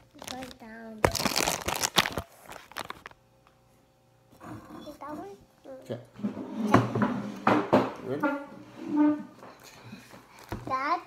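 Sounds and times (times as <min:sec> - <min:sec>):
crinkling and rubbing handling noise: 0:00.0 - 0:03.2.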